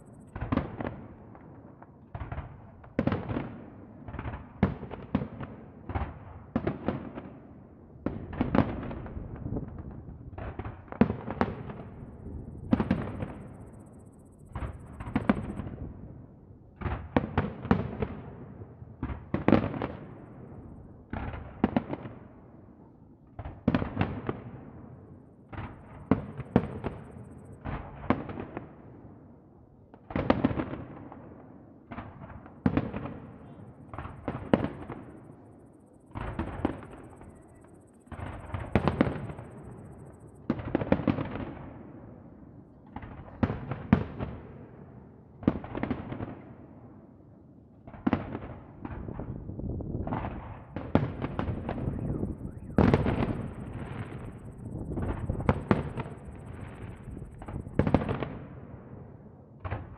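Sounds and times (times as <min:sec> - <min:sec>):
fireworks bursting: 0:08.3 - 0:15.8, 0:25.5 - 0:28.7, 0:31.9 - 0:42.0, 0:47.9 - 0:58.8.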